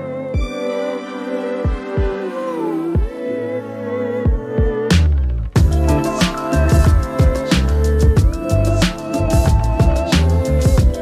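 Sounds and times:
r and b music: 0.0s - 11.0s
kick drum thumps: 5.6s - 5.8s, 6.7s - 8.4s, 10.7s - 11.0s.

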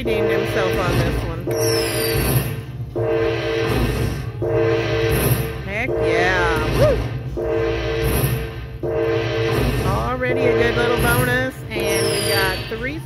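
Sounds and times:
slot machine win tune: 0.0s - 13.0s
falling electronic sweeps: 0.3s - 13.0s.

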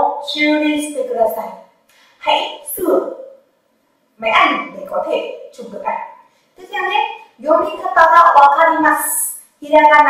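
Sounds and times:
woman speaking: 0.0s - 3.4s, 4.2s - 10.0s.

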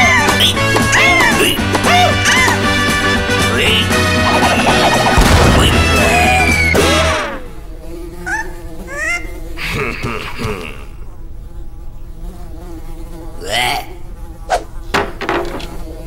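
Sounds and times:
cartoon flies buzzing: 0.0s - 16.0s
squeaky rising chirps: 4.3s - 7.3s
quick swishes: 14.5s - 14.7s.

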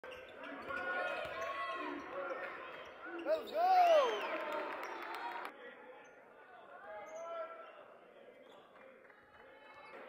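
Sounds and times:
voices in a gym: 0.0s - 10.0s.

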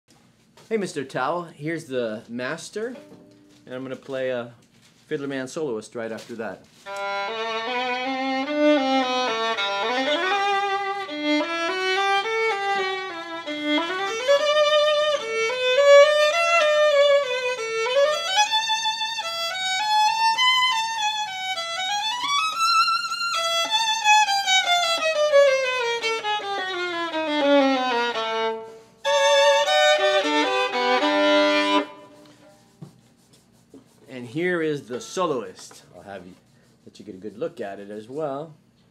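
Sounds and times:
solo violin melody: 6.8s - 32.5s
bowed violin chords: 6.9s - 32.5s.

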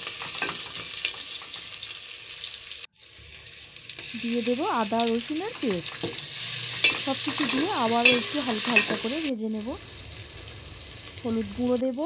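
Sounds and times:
onions sizzling in oil: 0.0s - 12.0s
spoon stirring in pot: 5.6s - 9.0s.

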